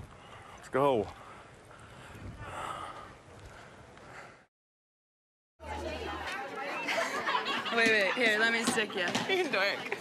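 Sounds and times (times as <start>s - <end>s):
faint outdoor background noise: 0.0s - 4.5s, 5.6s - 10.0s.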